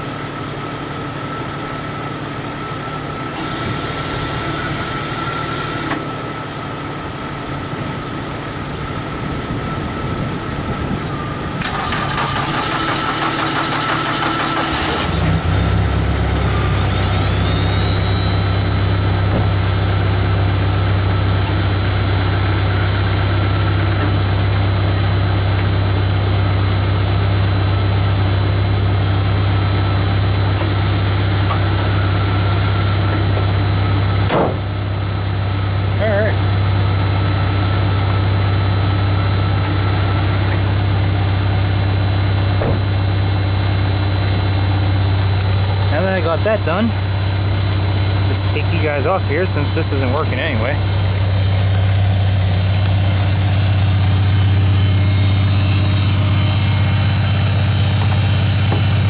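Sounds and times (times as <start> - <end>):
car engine idling: 0.0 - 59.0
high steady whine: 0.0 - 59.0
car engine cranking on starter: 11.6 - 18.2.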